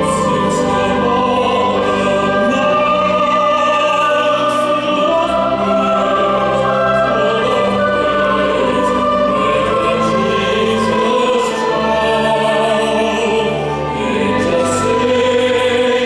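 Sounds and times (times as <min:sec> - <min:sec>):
orchestra with harp: 0:00.0 - 0:16.0
women's choir singing: 0:00.0 - 0:16.0.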